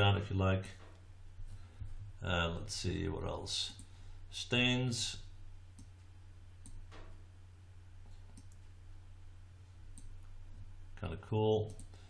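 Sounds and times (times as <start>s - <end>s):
steady low hum: 0.0s - 12.0s
computer mouse clicks: 5.8s - 7.1s, 8.2s - 8.7s, 9.9s - 10.3s.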